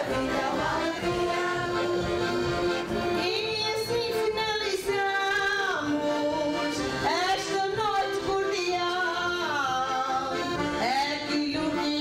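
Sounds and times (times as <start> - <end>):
woman singing into a microphone: 3.2 - 12.0.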